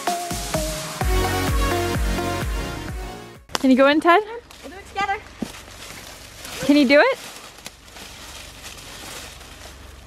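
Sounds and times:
rustling of dry leaves underfoot: 0:04.4 - 0:10.0
twigs snapping: 0:04.4 - 0:10.0.

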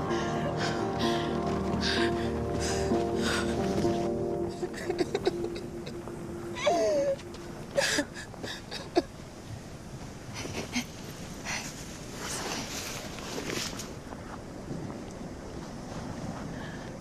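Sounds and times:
held music note: 0:00.0 - 0:08.2
woman sobbing: 0:00.0 - 0:09.1.

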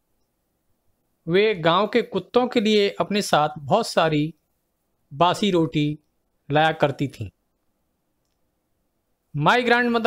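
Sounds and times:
man speaking: 0:01.2 - 0:04.4, 0:05.1 - 0:07.4, 0:09.3 - 0:10.0.

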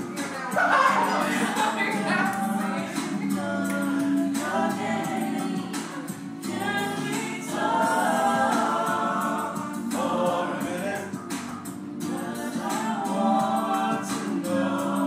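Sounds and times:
gospel choir singing: 0:00.0 - 0:15.0.

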